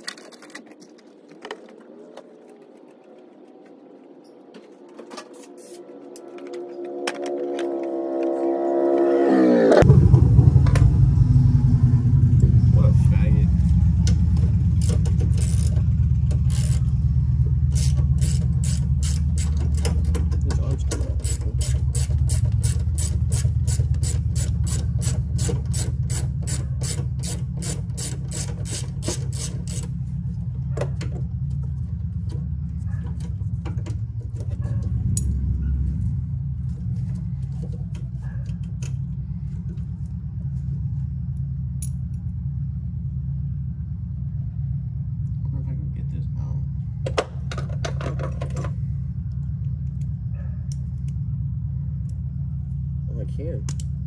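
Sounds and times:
low rumble: 9.8 - 26.8.

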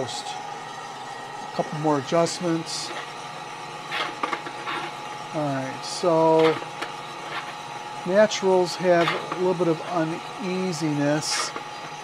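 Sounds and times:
coffee roaster humming: 0.0 - 12.0.

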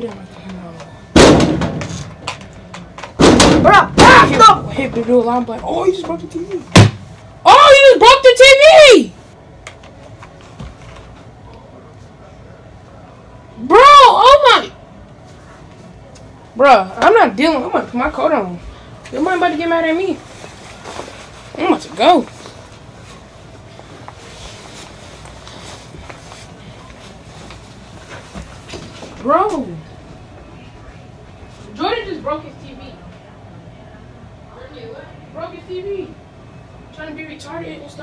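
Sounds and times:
person yelling high-pitched: 3.7 - 4.7, 7.4 - 9.1, 13.6 - 14.8.

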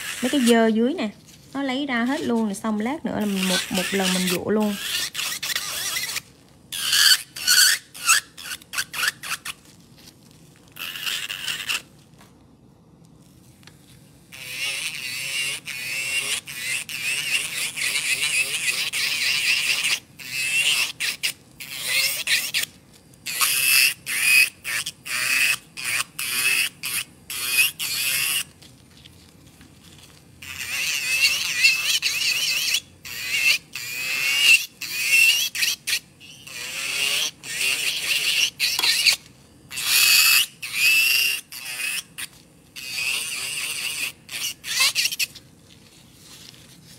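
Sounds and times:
nail drill whining and scraping: 0.0 - 0.8, 3.2 - 9.6, 10.7 - 11.9, 14.3 - 28.5, 30.0 - 45.4.

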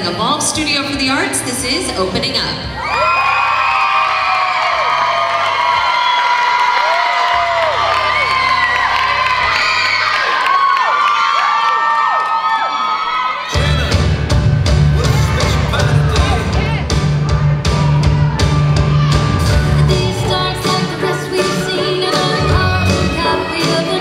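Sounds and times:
audience cheering and screaming: 2.7 - 14.3, 14.9 - 24.0
dance music with heavy beat: 13.5 - 24.0.

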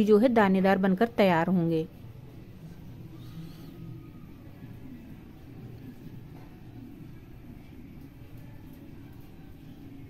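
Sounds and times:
faint low background hum: 0.0 - 10.0.

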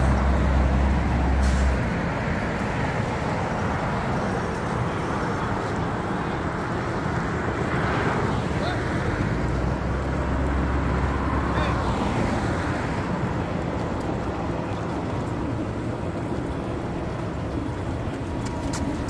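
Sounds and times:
passing vehicles rushing: 0.0 - 19.0.

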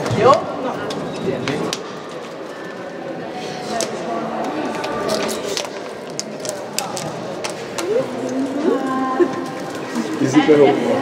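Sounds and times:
girls talking: 7.7 - 11.0.

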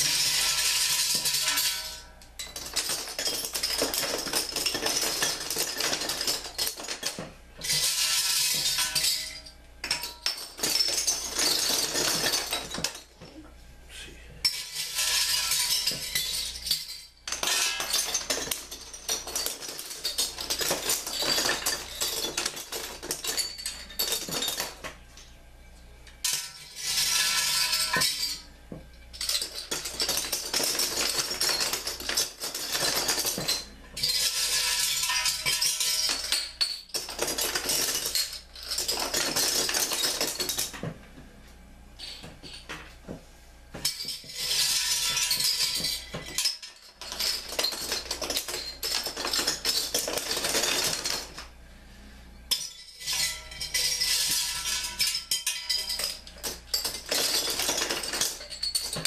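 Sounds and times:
metal bottle caps clinking: 43.8 - 51.4, 52.5 - 59.0.

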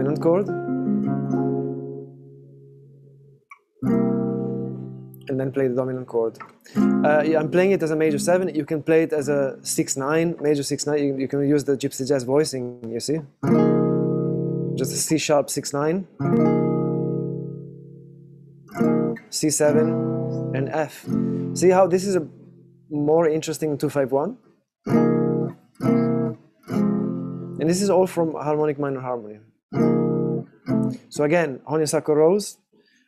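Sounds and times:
acoustic guitar chord ringing: 0.0 - 5.3, 6.7 - 10.1, 13.4 - 15.1, 16.2 - 22.9, 29.8 - 31.0
guitar chord struck loudly: 6.7 - 8.5, 16.2 - 22.9.

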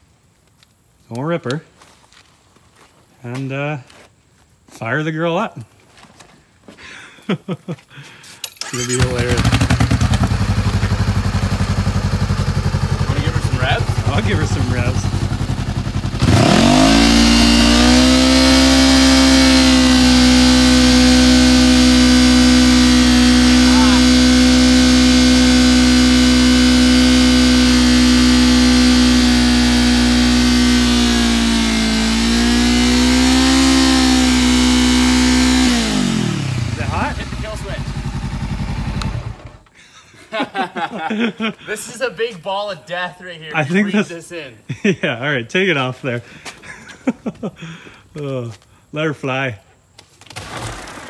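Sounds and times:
motorcycle engine revving: 8.6 - 39.7.

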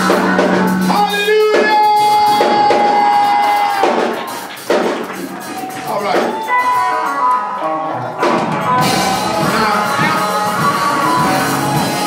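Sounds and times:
live gospel band: 0.0 - 12.0.

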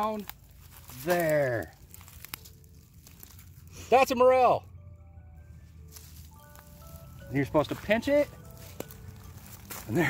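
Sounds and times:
dry leaves and twigs crackling: 0.0 - 10.0.

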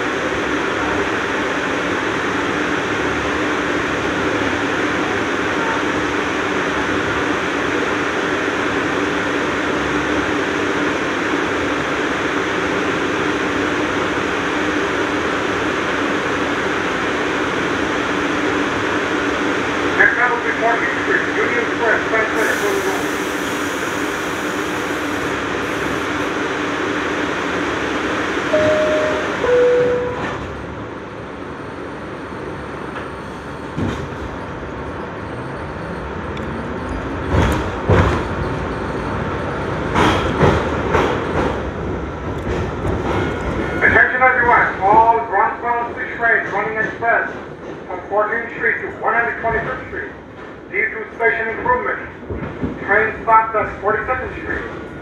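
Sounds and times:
subway car rumble and rail noise: 0.0 - 55.0
voices: 20.0 - 23.2, 52.8 - 54.8
two-note descending chime: 28.5 - 30.4.

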